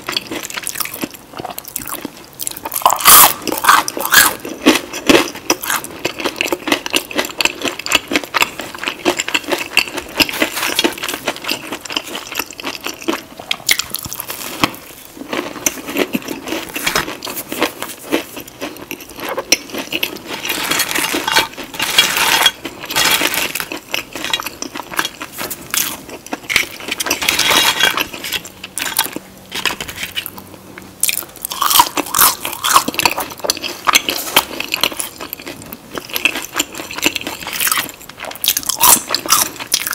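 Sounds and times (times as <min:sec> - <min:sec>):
crunching and chewing fried food: 0:00.0 - 0:39.9.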